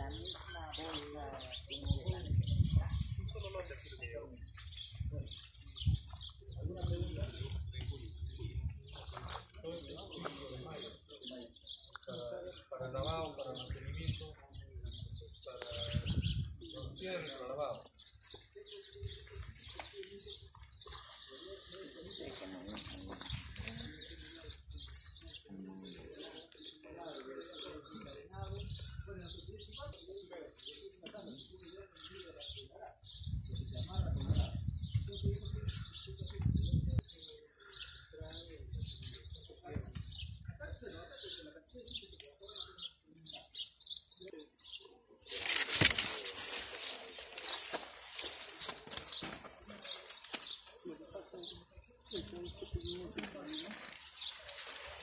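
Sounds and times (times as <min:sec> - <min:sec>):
faint voices: 0:00.0 - 0:55.0
small birds chirping: 0:00.0 - 0:55.0.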